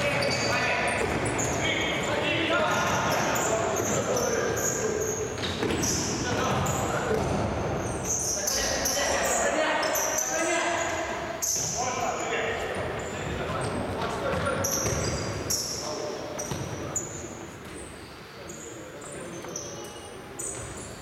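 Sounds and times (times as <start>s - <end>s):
shoes squeaking on hall floor: 0.0s - 21.0s.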